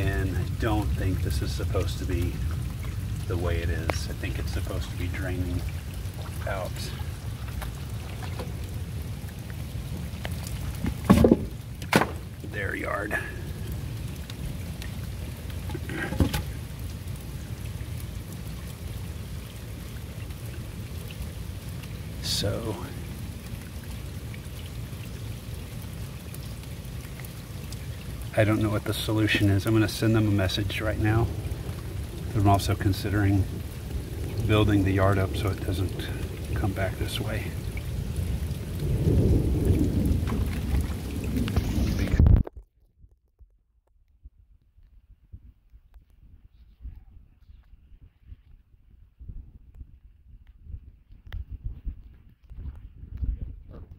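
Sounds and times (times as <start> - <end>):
low uneven rumble: 0.0 - 42.5, 44.2 - 53.9
runoff water running: 0.0 - 42.6
rain falling on wet ground: 0.0 - 43.5, 51.1 - 53.9.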